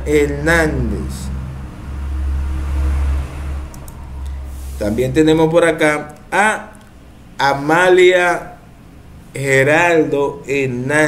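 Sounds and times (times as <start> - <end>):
low steady rumble: 0.0 - 7.6.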